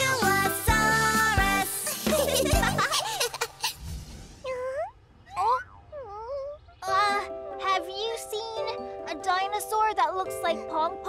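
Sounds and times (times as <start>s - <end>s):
cartoon baby dinosaur whimpering: 4.4s - 7.2s.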